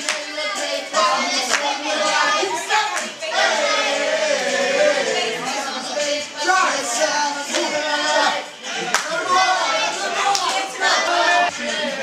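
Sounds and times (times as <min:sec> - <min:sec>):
group of voices: 0:00.0 - 0:12.0
sharp hand claps: 0:08.9 - 0:09.1.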